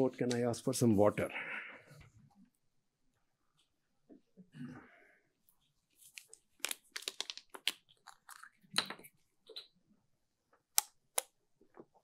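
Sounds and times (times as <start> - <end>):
plastic bottle crinkling: 6.0 - 9.7.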